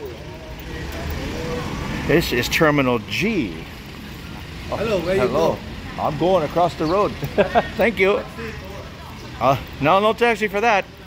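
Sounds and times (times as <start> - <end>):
faint voices: 0.0 - 11.0
road traffic rumbling past: 0.0 - 11.0.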